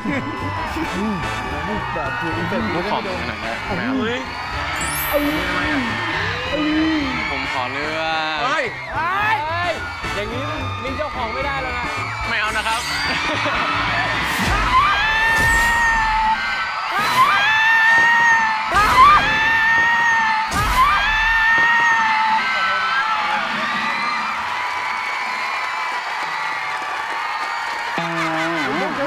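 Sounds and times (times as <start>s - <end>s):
people shouting and screaming: 0.0s - 25.6s.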